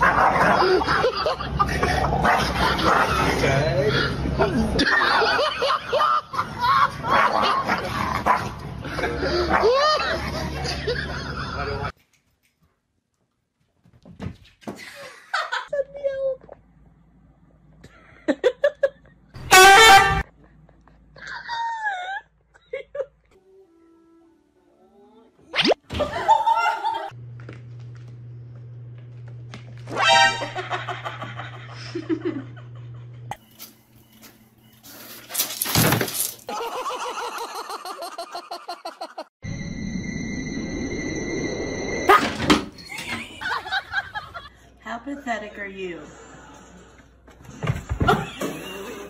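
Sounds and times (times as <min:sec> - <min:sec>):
steady background hum: 0:26.1 - 0:34.8
object falling and breaking: 0:35.3 - 0:36.5.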